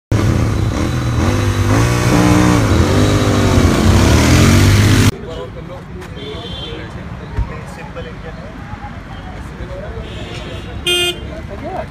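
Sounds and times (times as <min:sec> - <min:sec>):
motorcycles running loudly: 0:00.1 - 0:05.2
voices: 0:05.1 - 0:11.9.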